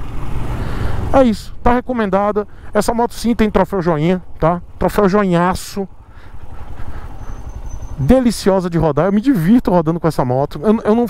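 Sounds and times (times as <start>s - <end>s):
motorcycle engine at low revs: 0.0s - 11.0s.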